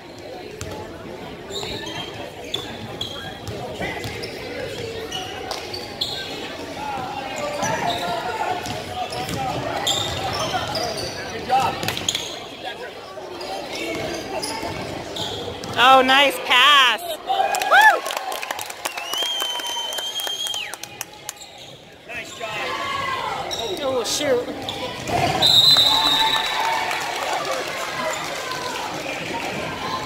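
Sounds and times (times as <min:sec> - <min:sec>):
echoing shouts and voices: 0:15.8 - 0:18.4, 0:22.1 - 0:30.0.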